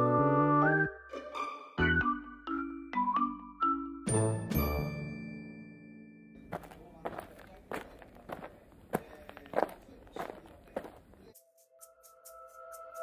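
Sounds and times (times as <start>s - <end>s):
background music tones: 0.0s - 7.0s, 11.3s - 13.0s.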